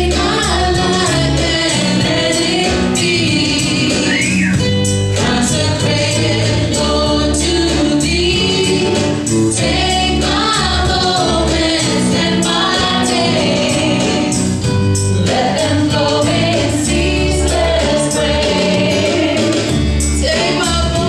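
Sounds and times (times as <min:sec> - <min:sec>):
voices singing together: 0:00.0 - 0:21.0
worship band playing: 0:00.0 - 0:21.0.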